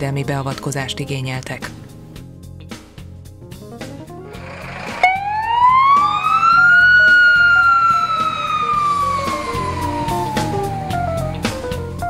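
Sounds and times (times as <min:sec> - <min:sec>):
emergency siren wailing: 0:04.3 - 0:12.0
music with drum beat: 0:05.0 - 0:12.0.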